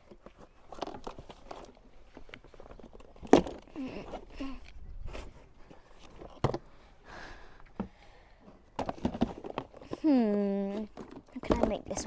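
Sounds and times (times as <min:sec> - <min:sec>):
plastic bottles rustling in box: 0:00.0 - 0:06.8, 0:08.4 - 0:12.0.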